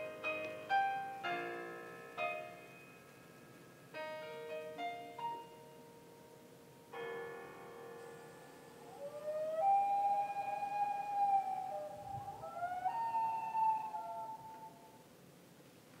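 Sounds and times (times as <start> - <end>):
loon wailing: 8.8 - 15.0.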